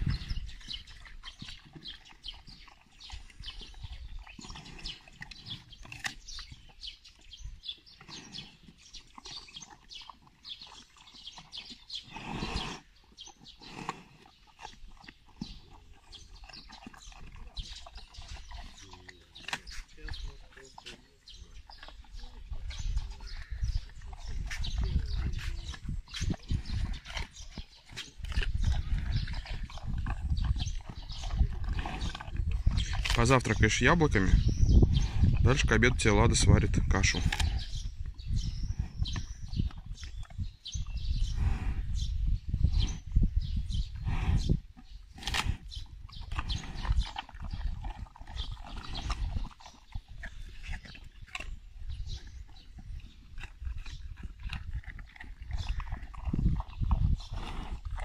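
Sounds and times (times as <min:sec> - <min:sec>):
bear crunching apples: 0:00.4 - 0:06.9, 0:13.3 - 0:34.5, 0:35.3 - 0:37.8, 0:45.1 - 0:58.0.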